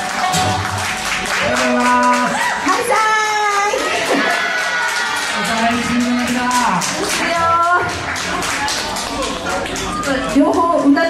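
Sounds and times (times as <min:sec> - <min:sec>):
acoustic guitar: 0:00.0 - 0:03.5
steady tapping beat: 0:05.4 - 0:11.0.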